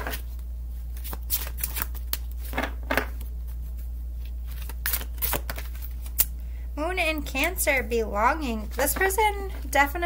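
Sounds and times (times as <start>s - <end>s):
cards being shuffled by hand: 0.0s - 6.3s
steady low hum: 0.0s - 10.0s.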